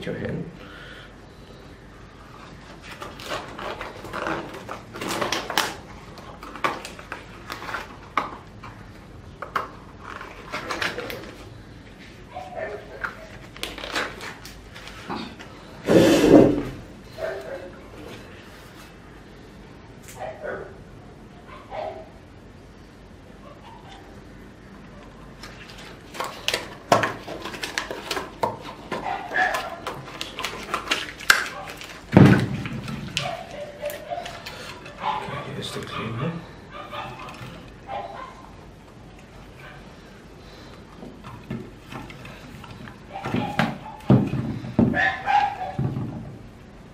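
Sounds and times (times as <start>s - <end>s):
gloves rustling and snapping: 2.4s - 11.9s, 12.9s - 15.6s, 25.3s - 35.0s.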